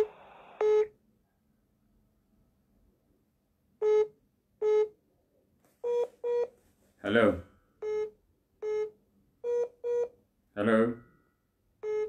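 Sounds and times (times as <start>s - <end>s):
short electronic telephone beeps: 5.8s - 6.5s.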